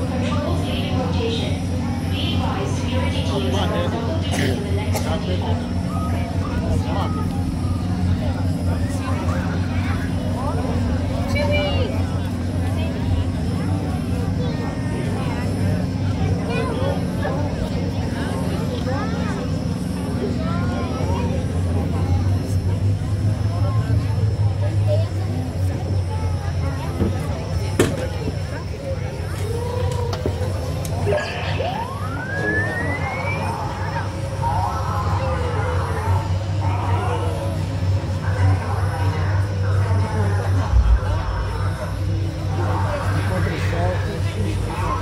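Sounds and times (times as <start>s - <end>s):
crowd chatter: 0.0s - 45.0s
low mechanical hum: 0.0s - 45.0s.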